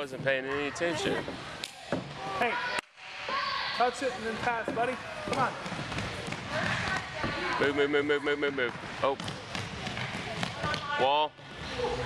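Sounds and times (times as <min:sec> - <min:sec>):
ball kicks and bounces: 0:09.1 - 0:11.0.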